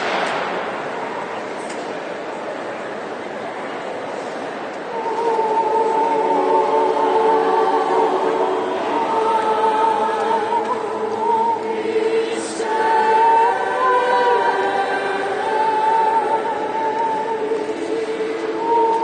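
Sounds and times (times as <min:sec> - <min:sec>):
mixed choir singing held chords: 0:04.8 - 0:19.0.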